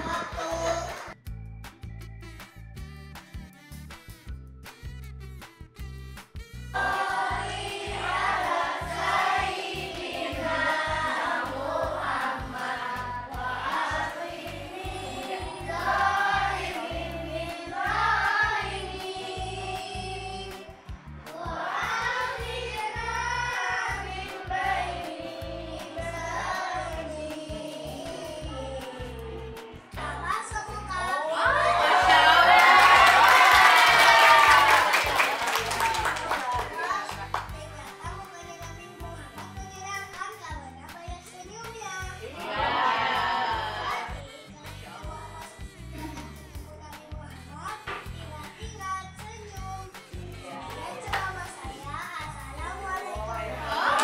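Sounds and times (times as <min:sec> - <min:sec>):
children singing: 0:06.8 - 0:30.5, 0:53.0 - 0:54.0
hand clapping: 0:32.6 - 0:37.6, 0:50.7 - 0:51.4.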